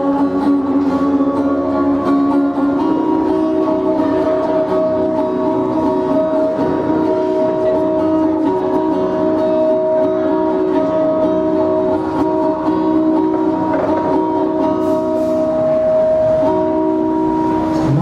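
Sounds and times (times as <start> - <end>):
acoustic guitar through pa: 0.0 - 18.0.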